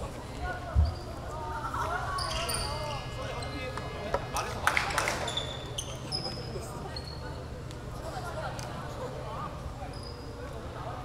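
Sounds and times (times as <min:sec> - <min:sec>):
low hum of hall: 0:00.0 - 0:11.0.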